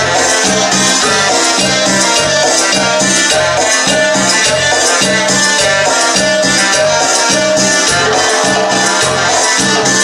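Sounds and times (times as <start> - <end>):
cumbia band through pa: 0.0 - 10.0
repeating bass pattern: 0.0 - 10.0.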